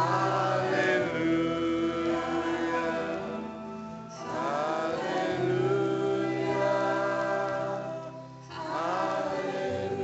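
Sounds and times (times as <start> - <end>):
piano: 0.0 - 10.0.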